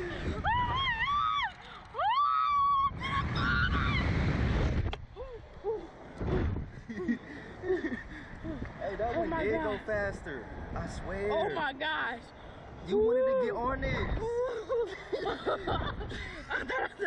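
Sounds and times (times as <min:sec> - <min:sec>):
wind rushing past microphone: 0:00.0 - 0:11.4, 0:12.4 - 0:14.5, 0:15.1 - 0:16.7.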